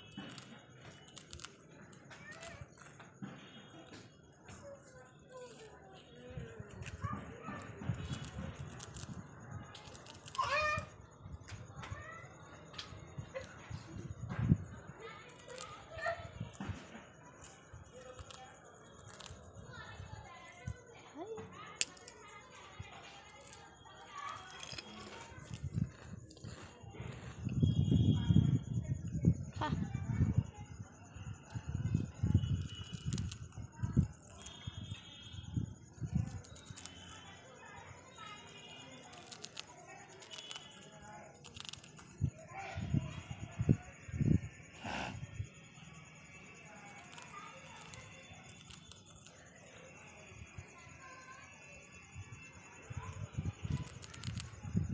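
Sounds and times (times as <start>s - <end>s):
parakeet crunching biscuit: 0.0s - 11.7s, 14.7s - 27.3s, 32.0s - 34.8s, 35.7s - 42.3s, 46.5s - 49.9s, 53.1s - 54.9s.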